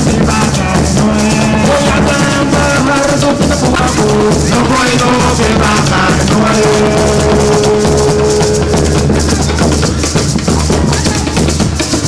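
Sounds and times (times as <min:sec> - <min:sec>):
hand drums: 0:00.0 - 0:12.0
maracas shaking: 0:00.0 - 0:12.0.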